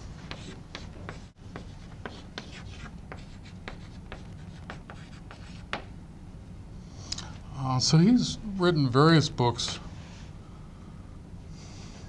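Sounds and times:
chalk tapping and scratching: 0.3s - 5.9s.

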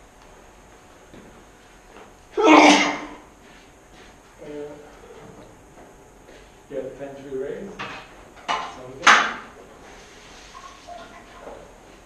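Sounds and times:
person sneezing: 2.4s - 3.2s.

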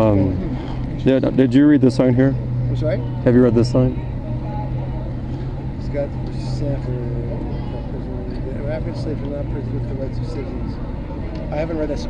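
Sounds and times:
faint voices: 0.0s - 12.0s
low mechanical hum: 0.0s - 12.0s.

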